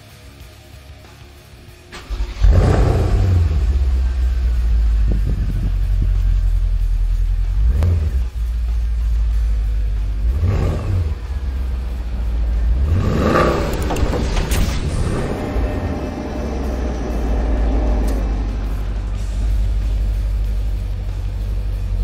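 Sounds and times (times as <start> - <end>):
vehicle engine idling and revving: 0.0 - 22.0.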